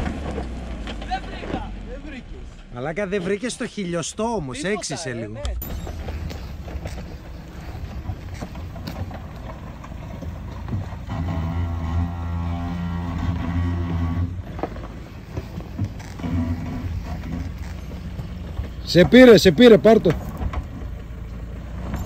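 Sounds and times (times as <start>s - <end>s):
engine running at low revs: 5.6s - 22.0s.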